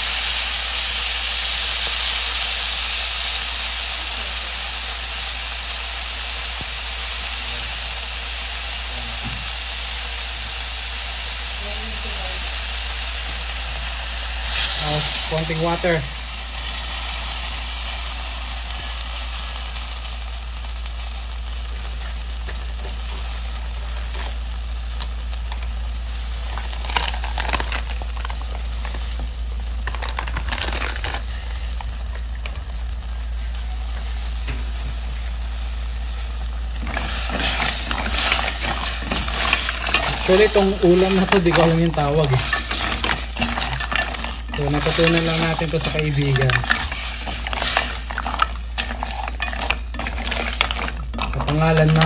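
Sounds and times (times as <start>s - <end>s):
food sizzling in a pot: 0.0s - 52.0s
spoon stirring shells in pot: 36.8s - 52.0s.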